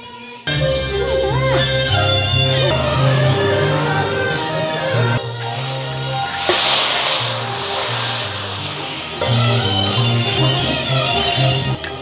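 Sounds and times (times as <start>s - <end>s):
background music with bass and guitar: 0.0s - 12.0s
meat hissing in hot fat: 5.4s - 10.4s.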